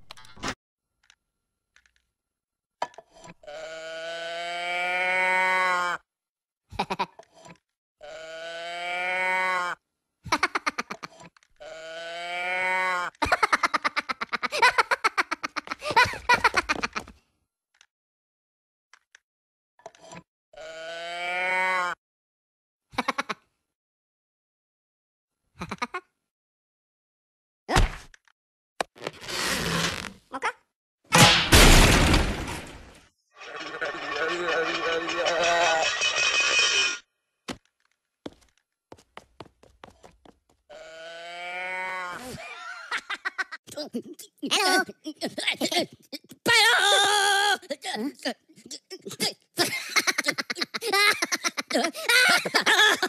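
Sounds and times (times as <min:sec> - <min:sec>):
moo box toy mooing: 0:03.4 - 0:06.0, 0:08.0 - 0:09.8, 0:20.6 - 0:22.0, 0:40.7 - 0:42.2
rapid giggling laughter: 0:13.2 - 0:17.2, 0:42.2 - 0:46.3, 0:48.6 - 0:53.0
cartoon elastic stretching creak: 0:29.0 - 0:30.3.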